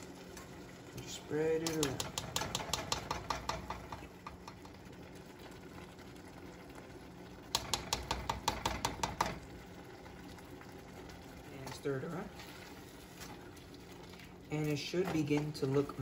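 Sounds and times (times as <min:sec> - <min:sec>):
spoon clicking and scraping in pot: 0:01.6 - 0:04.7, 0:07.5 - 0:09.3.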